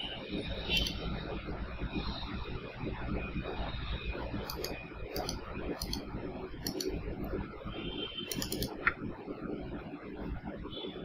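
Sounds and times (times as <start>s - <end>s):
computer mouse clicking: 0.8s - 1.0s, 4.4s - 7.0s, 8.3s - 9.0s.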